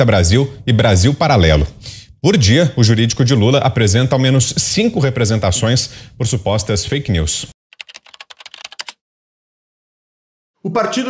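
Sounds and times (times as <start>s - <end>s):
keyboard typing clicks: 7.8s - 9.0s.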